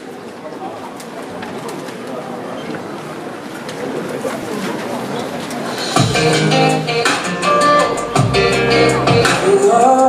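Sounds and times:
murmur of many voices: 0:00.0 - 0:10.0.

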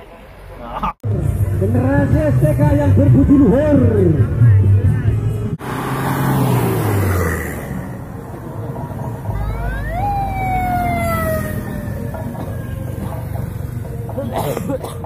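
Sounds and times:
car passing: 0:05.4 - 0:14.8
motorcycles passing: 0:05.4 - 0:15.0
siren wail: 0:09.4 - 0:13.7.

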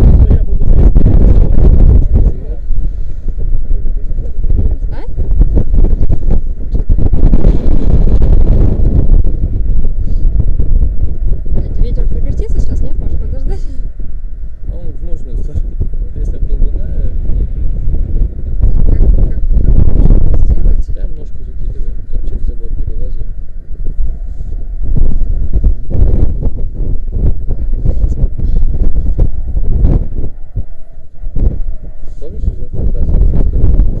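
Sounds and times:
muffled voice talking: 0:00.0 - 0:00.8, 0:01.9 - 0:02.7, 0:03.9 - 0:05.2, 0:11.6 - 0:13.7, 0:14.7 - 0:17.6, 0:18.7 - 0:23.3, 0:32.0 - 0:33.6
wind buffeting microphone: 0:00.0 - 0:34.0.

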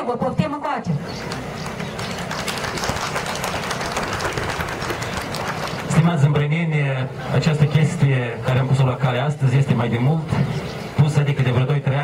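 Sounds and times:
crowd applauding: 0:01.2 - 0:06.2.

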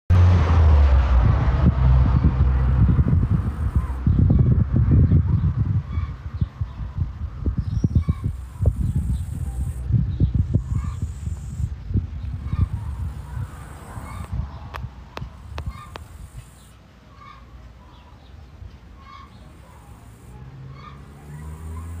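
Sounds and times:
low rumble: 0:00.1 - 0:16.4.

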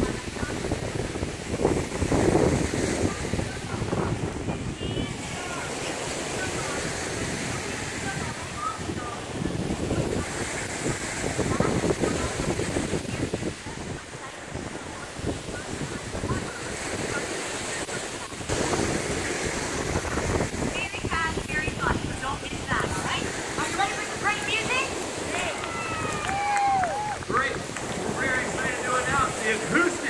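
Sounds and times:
waves breaking on shore: 0:00.0 - 0:30.0
wind buffeting microphone: 0:00.0 - 0:30.0.

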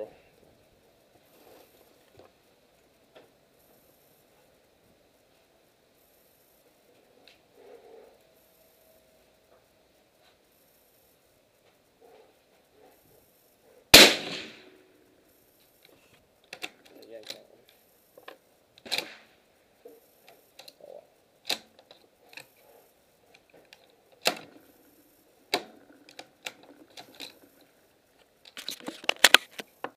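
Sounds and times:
suppressed rifle shot: 0:13.9 - 0:14.8, 0:18.8 - 0:19.3
sharp cracks and clicks: 0:14.0 - 0:14.8, 0:15.8 - 0:19.4, 0:20.3 - 0:20.8, 0:21.4 - 0:22.6, 0:23.3 - 0:24.8, 0:25.5 - 0:29.9.

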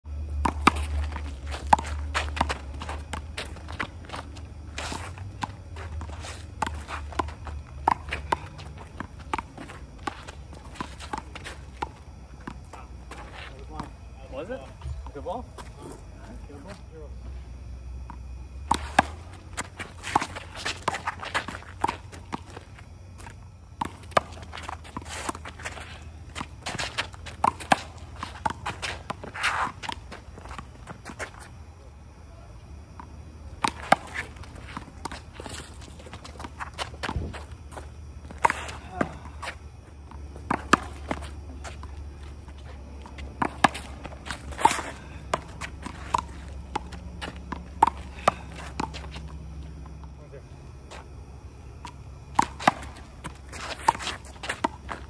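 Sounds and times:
sneakers scuffing on court: 0:00.2 - 0:16.9, 0:18.0 - 0:31.6, 0:33.0 - 0:50.2, 0:50.8 - 0:51.2, 0:51.8 - 0:55.0.

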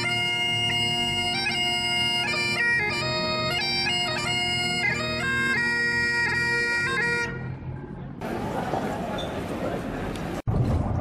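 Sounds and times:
bagpipe tune over drones: 0:00.0 - 0:07.5
outdoor noise: 0:00.0 - 0:11.0.

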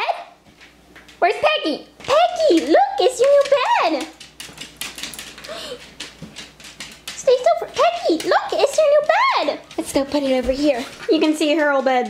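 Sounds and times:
dog claws clicking on wooden floor: 0:00.5 - 0:01.2, 0:02.0 - 0:12.0.

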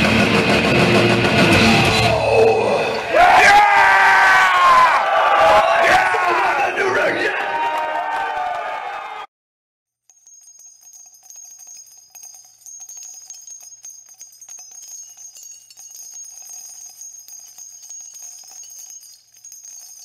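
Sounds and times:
small bells jingling: 0:10.0 - 0:20.0.

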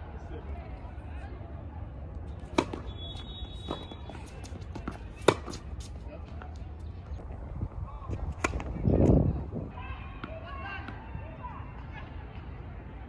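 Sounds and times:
tennis ball struck by racket: 0:02.4 - 0:02.9, 0:03.7 - 0:05.9, 0:08.3 - 0:09.2.

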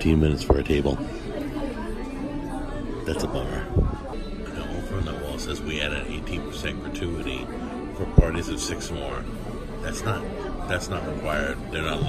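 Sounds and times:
murmur of background chatter: 0:00.0 - 0:12.0.

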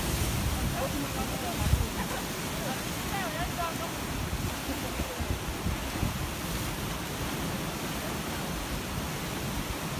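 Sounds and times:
surf washing against rocks: 0:00.0 - 0:09.9
wind buffeting microphone: 0:00.0 - 0:09.9.

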